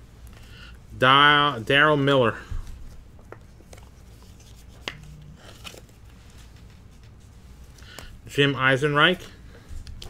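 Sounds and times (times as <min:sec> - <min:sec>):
card rustling: 0:02.2 - 0:08.2.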